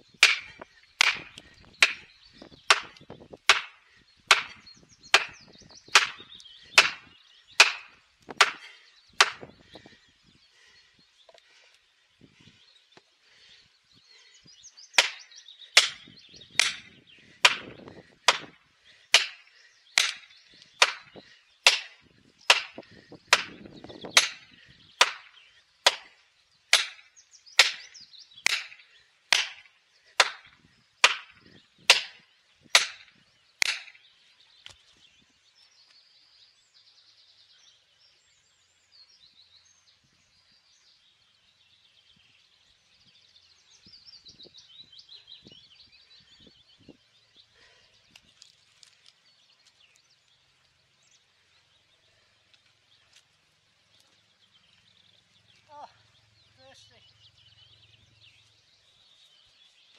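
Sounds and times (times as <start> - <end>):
axe striking wedges: 0.2 - 2.1, 2.7 - 9.5, 15.0 - 15.2, 15.8 - 19.4, 20.0 - 23.6, 24.2 - 26.1, 26.7 - 34.0.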